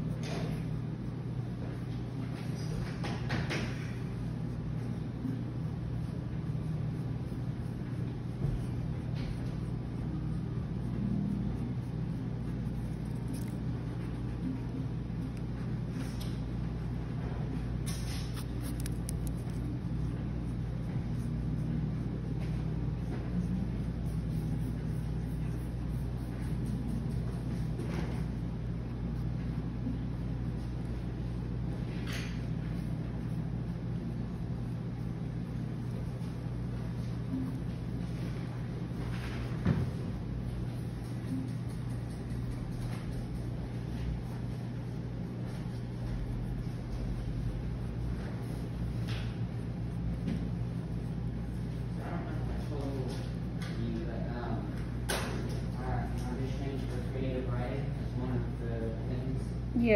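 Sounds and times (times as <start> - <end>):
low hum of room machinery: 0.0 - 59.9
pencil scratching on paper: 3.6 - 17.0, 17.9 - 53.4.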